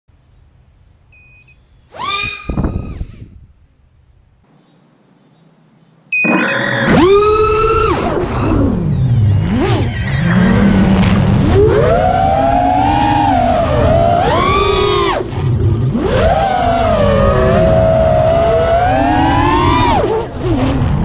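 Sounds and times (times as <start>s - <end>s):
drone motors whining: 1.9s - 3.4s, 6.2s - 21.0s.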